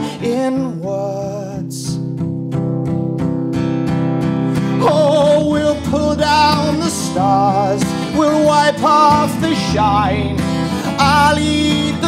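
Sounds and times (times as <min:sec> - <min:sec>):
man singing: 0:00.0 - 0:02.2, 0:04.6 - 0:12.0
acoustic guitar strumming: 0:00.0 - 0:12.0.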